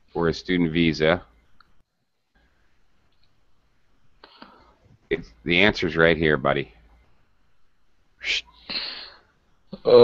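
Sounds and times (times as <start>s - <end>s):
person exhaling: 8.6s - 9.3s.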